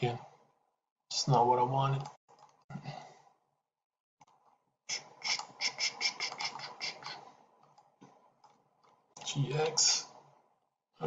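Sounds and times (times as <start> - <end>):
mouse scroll wheel clicking: 2.0 - 2.6.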